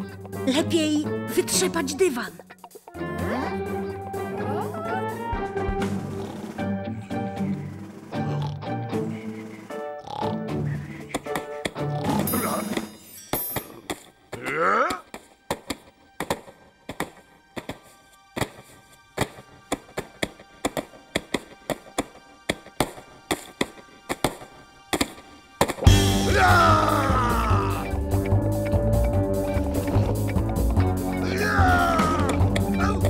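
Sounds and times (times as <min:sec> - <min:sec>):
music: 0:00.0 - 0:33.0.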